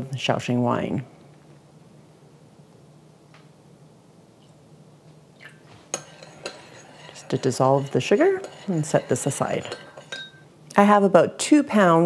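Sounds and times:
low room hum: 0.0 - 12.0
spoon clinking ceramic bowl: 5.9 - 10.5.

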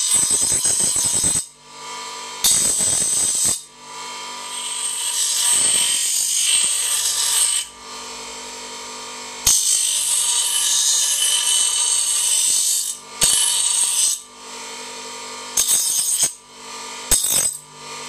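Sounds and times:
metal grinding on grinder wheel: 0.0 - 7.7, 9.4 - 14.2, 15.6 - 16.4, 17.1 - 17.6.

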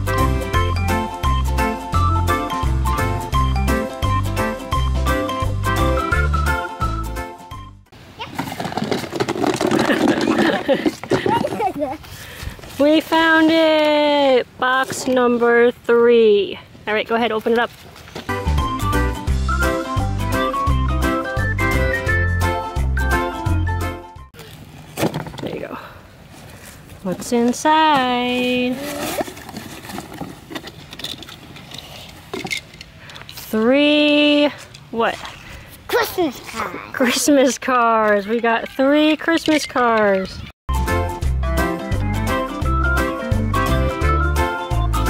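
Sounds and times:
paper rustling: 28.4 - 30.9
cardboard box flaps rustling: 28.7 - 30.6
young child shouting: 35.9 - 37.0.

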